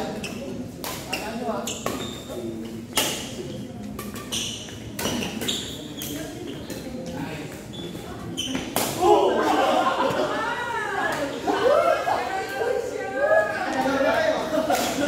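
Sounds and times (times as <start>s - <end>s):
shoe squeaks on court: 0.1s - 6.9s, 7.5s - 8.8s.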